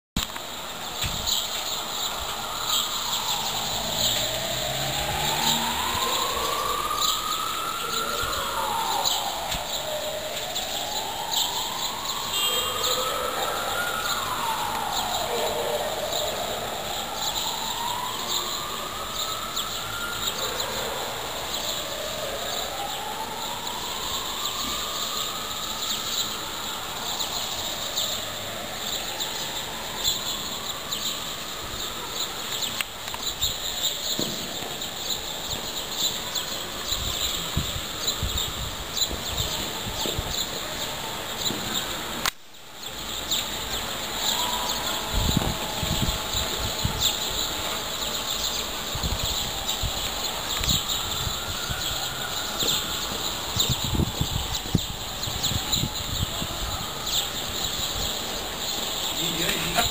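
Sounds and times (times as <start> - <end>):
siren wailing: 0.3 - 42.3, 43.1 - 59.9.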